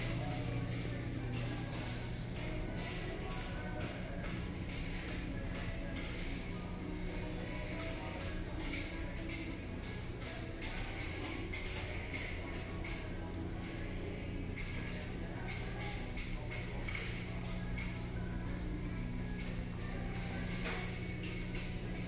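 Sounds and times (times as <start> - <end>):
faint in-store background music: 0.0 - 22.0
low hum of a large store: 0.0 - 22.0.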